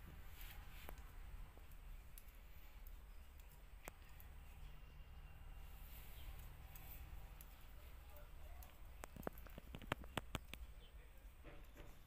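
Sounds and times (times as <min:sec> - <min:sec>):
low steady hum: 0:00.0 - 0:12.0
knitting needles clicking: 0:00.3 - 0:04.8, 0:05.9 - 0:10.9.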